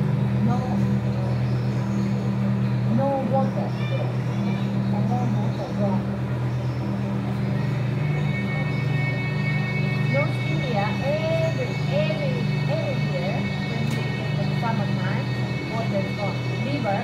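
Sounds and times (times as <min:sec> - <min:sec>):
aquarium equipment hum: 0:00.0 - 0:17.0
faint indistinct voices: 0:00.0 - 0:17.0.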